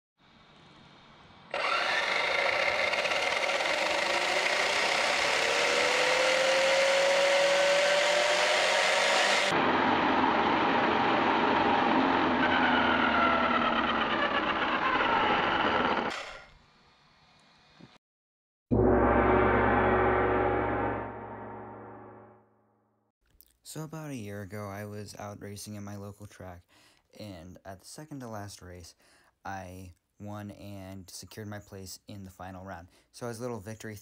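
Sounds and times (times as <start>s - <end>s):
electric motor whining: 1.5s - 16.4s.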